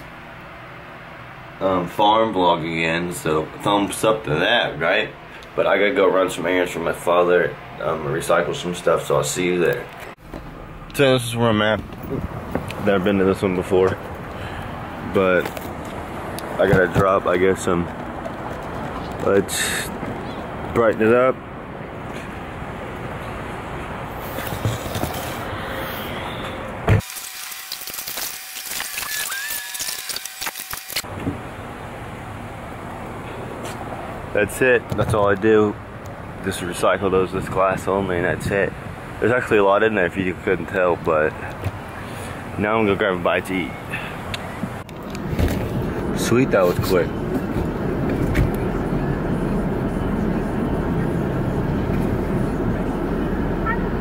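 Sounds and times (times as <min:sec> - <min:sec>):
car running noise inside cabin: 0:44.4 - 0:54.0.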